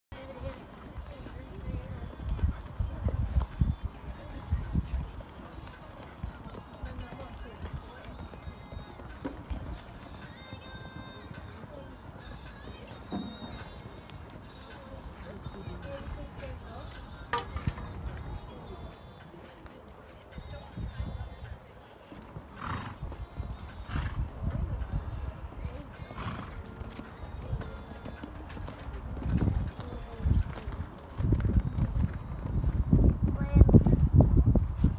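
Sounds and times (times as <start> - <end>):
hoofbeats on sand: 0.1 - 34.9
murmur of voices: 0.1 - 34.9.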